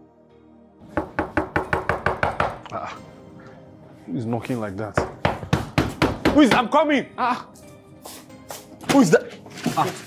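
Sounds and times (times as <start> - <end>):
soft background music: 0.0 - 10.0
rapid knocking on wooden door: 1.0 - 2.6, 5.0 - 6.7.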